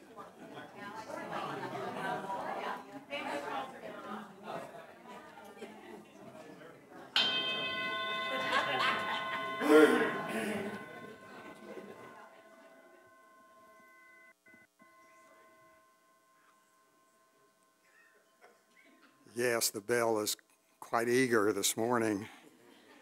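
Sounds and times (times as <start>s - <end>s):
bell ringing: 7.2s - 18.8s.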